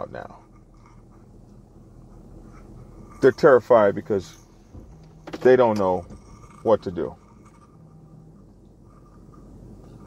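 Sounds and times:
low hum: 0:00.0 - 0:10.0
man talking: 0:03.2 - 0:04.4, 0:05.3 - 0:07.2.

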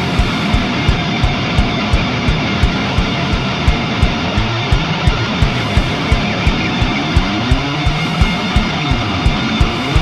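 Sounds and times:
heavy punk music: 0:00.0 - 0:10.0.

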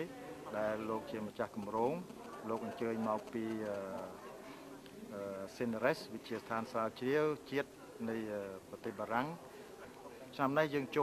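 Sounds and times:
man speaking: 0:00.5 - 0:04.2, 0:10.1 - 0:11.0.

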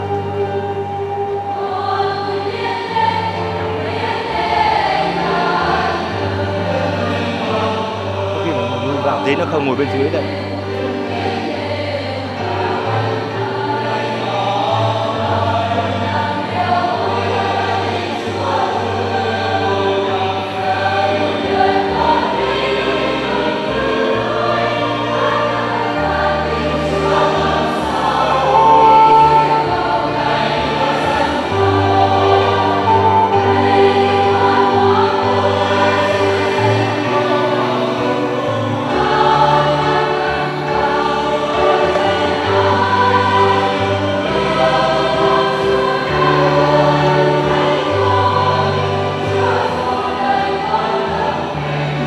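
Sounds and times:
choir singing a hymn: 0:00.0 - 0:52.0.

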